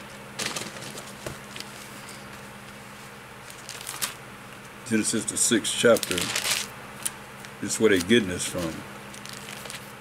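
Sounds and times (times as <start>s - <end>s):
low steady hum: 0.0s - 10.0s
paper pages rustling: 0.4s - 4.2s, 5.8s - 10.0s.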